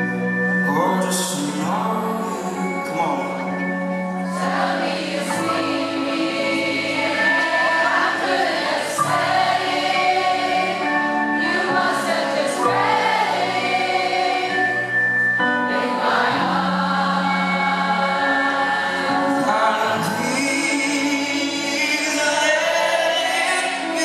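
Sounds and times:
live band music: 0.0 - 24.0.

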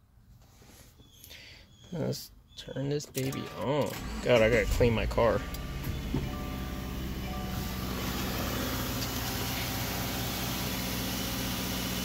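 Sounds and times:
car engine starting and idling: 3.2 - 12.0.

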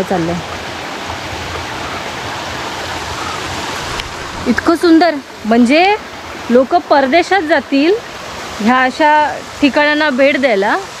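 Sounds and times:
river water rushing over rocks: 0.0 - 11.0.

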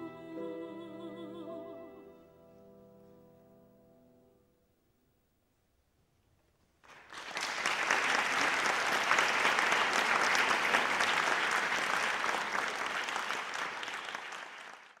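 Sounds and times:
audience applauding: 6.8 - 15.0.

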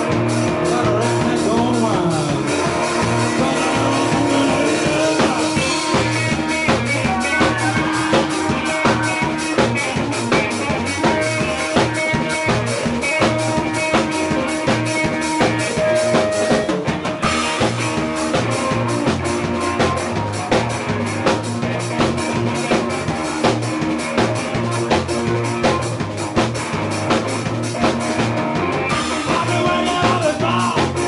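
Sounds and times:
drum kit steady beat: 0.0 - 31.0
live rock trio playing: 0.0 - 31.0.

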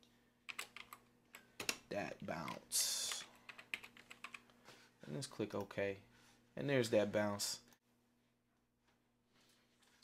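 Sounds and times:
typing on computer keyboard: 0.5 - 1.0, 2.5 - 4.4.

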